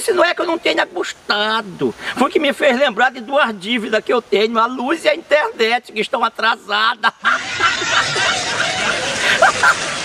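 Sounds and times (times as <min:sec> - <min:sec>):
people laughing: 0:06.9 - 0:10.0.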